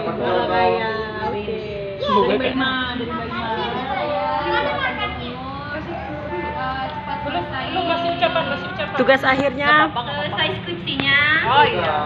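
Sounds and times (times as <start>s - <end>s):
child's voice: 0.9s - 2.5s, 3.1s - 6.4s.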